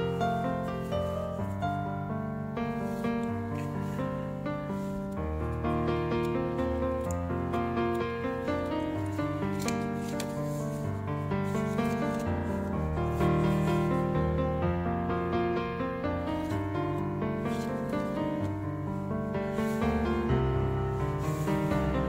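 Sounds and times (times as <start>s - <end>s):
instrumental background music: 0.0s - 22.0s.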